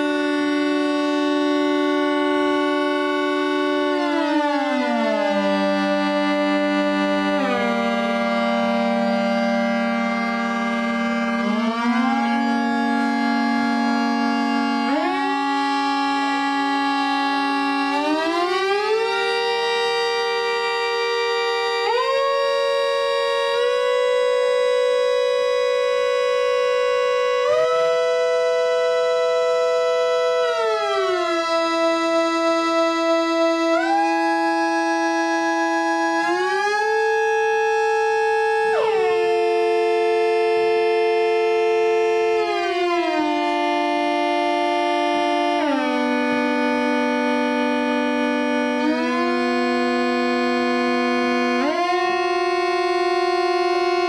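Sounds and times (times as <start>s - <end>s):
analog synthesizer drone: 0.0s - 54.0s.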